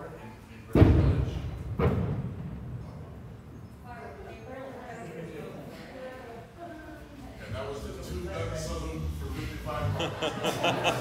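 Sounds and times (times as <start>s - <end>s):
heavy thumps with low ringing: 0.7s - 3.6s.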